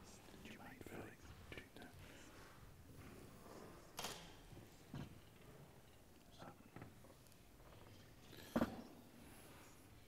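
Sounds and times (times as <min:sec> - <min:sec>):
faint whispering voices: 0:00.0 - 0:02.6, 0:06.3 - 0:06.9.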